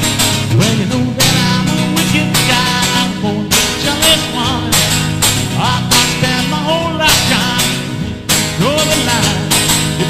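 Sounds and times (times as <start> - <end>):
acoustic guitar strumming: 0.0 - 10.0
man singing: 0.4 - 10.0.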